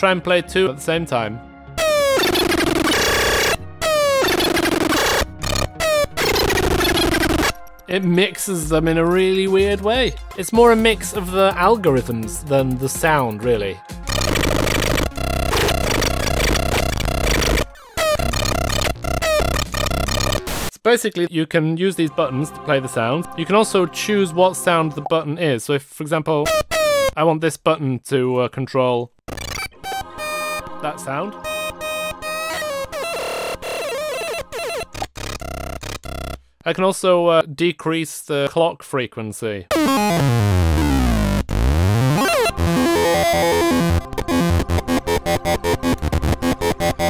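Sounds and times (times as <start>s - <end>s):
harsh electronic drum noise: 1.8s - 7.6s, 14.0s - 20.7s, 39.7s - 47.0s.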